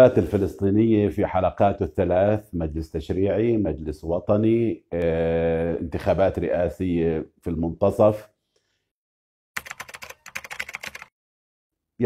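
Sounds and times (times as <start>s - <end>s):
computer keyboard typing: 9.6s - 11.2s.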